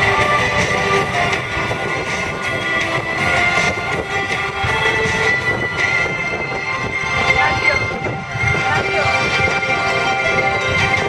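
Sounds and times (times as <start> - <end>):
background music: 0.0 - 11.0
jet engines whining: 0.0 - 11.0.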